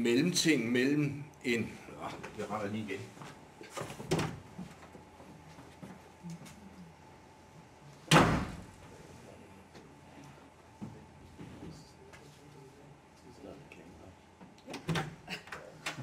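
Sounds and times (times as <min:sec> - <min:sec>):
light knocks and shuffling: 0:09.7 - 0:12.7.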